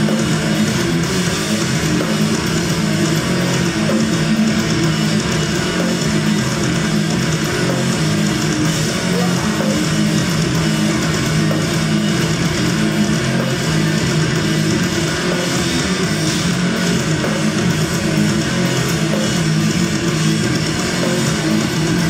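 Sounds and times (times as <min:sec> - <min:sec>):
distorted electric guitars: 0:00.0 - 0:22.0
drums: 0:00.0 - 0:22.0.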